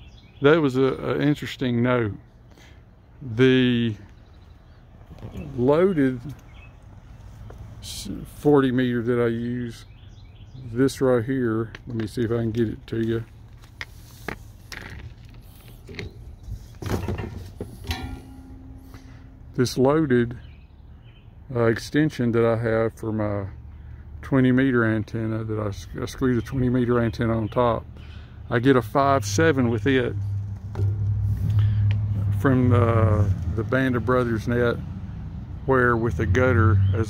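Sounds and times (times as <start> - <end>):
faint clicks and rustles: 12.9 - 17.8
steady low rumble: 29.1 - 36.3.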